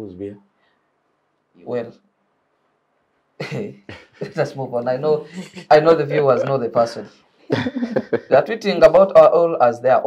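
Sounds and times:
man laughing: 0:03.4 - 0:06.6, 0:07.5 - 0:08.5.

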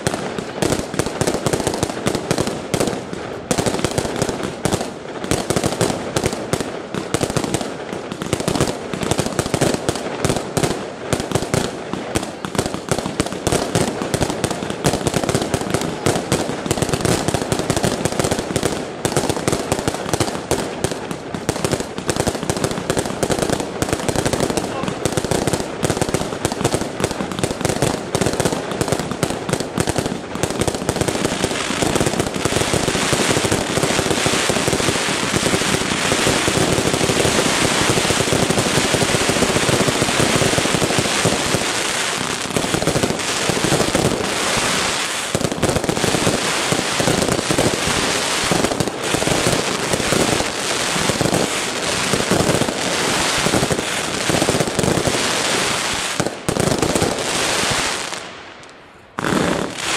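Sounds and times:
fireworks popping and crackling: 0:00.0 - 0:59.9.

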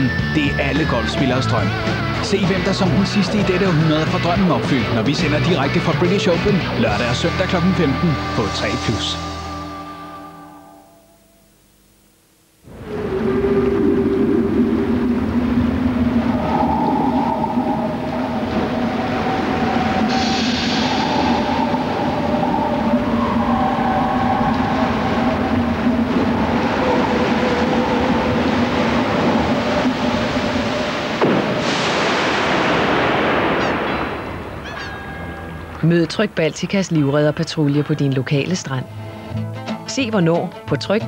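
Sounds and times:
held low tones: 0:00.0 - 0:31.2
waves washing: 0:00.6 - 0:09.1, 0:12.7 - 0:39.2
wave crash: 0:12.7 - 0:35.8.

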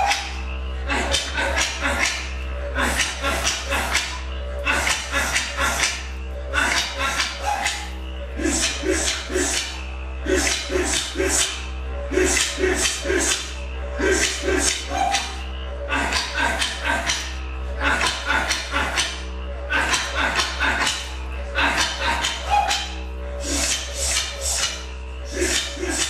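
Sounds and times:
didgeridoo drone: 0:00.0 - 0:26.0
sharp clicking beats: 0:00.0 - 0:26.0.

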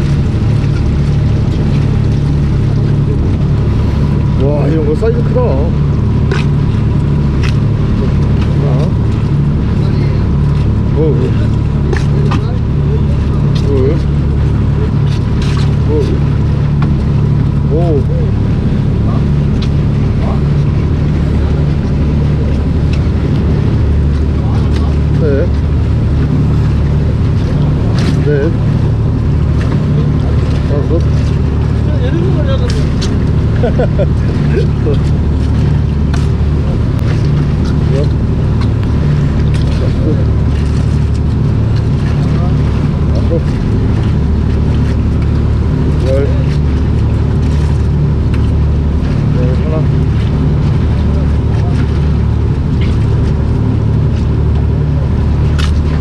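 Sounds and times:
boat engine humming: 0:00.0 - 0:56.0
faint voices: 0:07.8 - 0:16.5, 0:17.6 - 0:38.6, 0:49.0 - 0:53.6.

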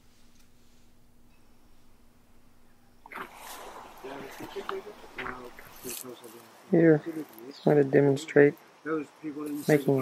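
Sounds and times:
indistinct voices outdoors: 0:03.0 - 0:10.0.

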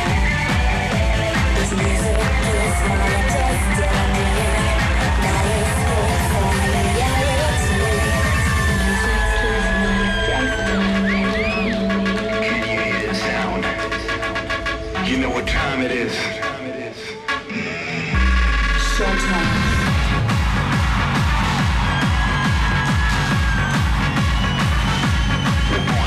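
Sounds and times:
electronic hard-dance music: 0:00.0 - 0:26.0
kick drum: 0:19.8 - 0:26.0.

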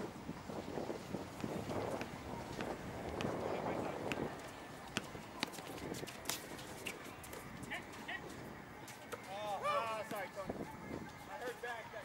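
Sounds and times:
footsteps on hard court: 0:01.2 - 0:09.4
basketball bouncing: 0:01.4 - 0:03.4, 0:04.9 - 0:05.6
sneaker squeaks: 0:04.9 - 0:08.1.

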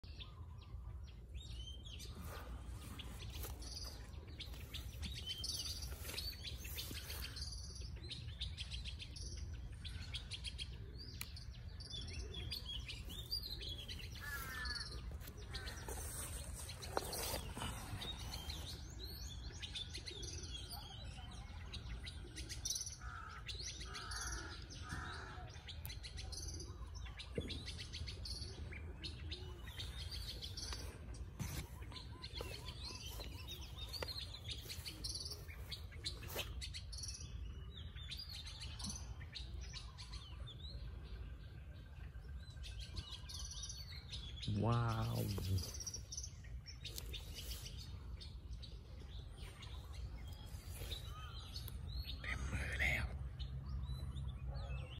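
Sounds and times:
small birds chirping: 0:00.0 - 0:54.9.

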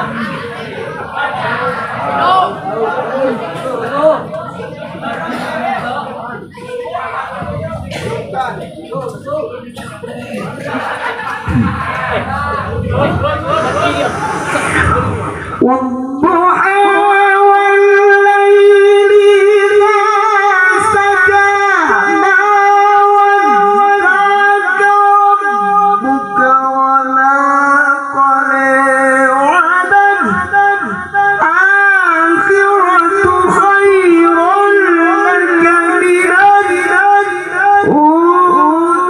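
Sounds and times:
man reciting melodically: 0:15.6 - 0:39.0.

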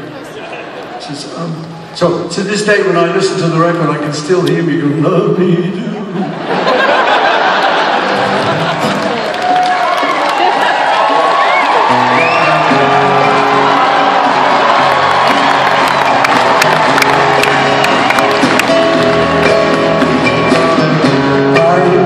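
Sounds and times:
crowd cheering and whooping: 0:06.4 - 0:20.2
live rock band music: 0:07.9 - 0:09.6, 0:11.6 - 0:22.0.

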